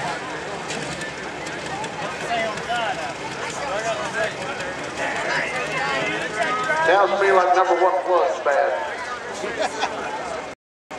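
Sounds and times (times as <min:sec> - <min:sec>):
tractor engine idling: 0:00.0 - 0:09.4.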